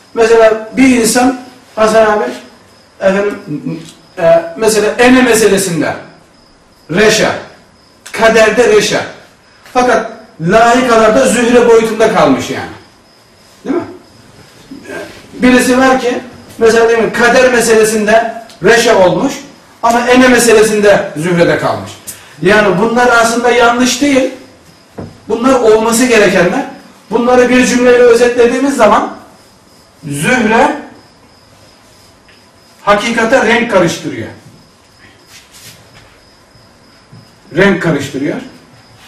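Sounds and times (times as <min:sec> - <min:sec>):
man talking: 0:00.2 - 0:06.1, 0:06.9 - 0:07.5, 0:08.1 - 0:09.2, 0:09.8 - 0:12.8, 0:14.8 - 0:24.4, 0:25.3 - 0:29.2, 0:30.0 - 0:30.9, 0:32.8 - 0:34.4, 0:37.5 - 0:38.6.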